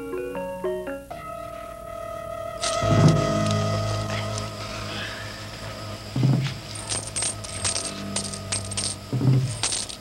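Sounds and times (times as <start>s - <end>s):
light metallic clinking: 6.7s - 10.0s.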